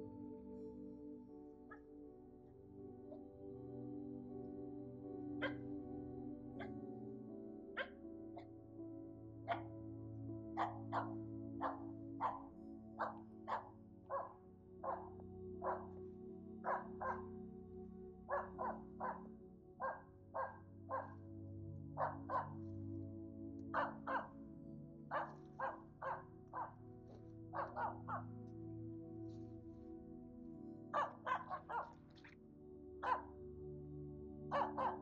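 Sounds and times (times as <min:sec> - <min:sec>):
background music: 0:00.0 - 0:35.0
dog barking: 0:05.4 - 0:05.6, 0:07.7 - 0:08.5, 0:09.5 - 0:09.7, 0:10.6 - 0:16.0, 0:16.6 - 0:17.3, 0:18.3 - 0:21.2, 0:22.0 - 0:22.6, 0:23.7 - 0:24.3, 0:25.1 - 0:26.8, 0:27.5 - 0:28.3, 0:30.9 - 0:32.1, 0:33.0 - 0:33.3, 0:34.5 - 0:35.0.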